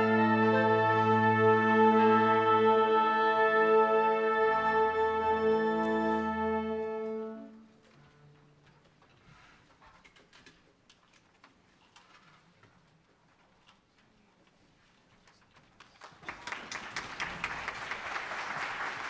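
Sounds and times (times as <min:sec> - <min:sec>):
faint clicks and rustles: 0:07.7 - 0:16.2.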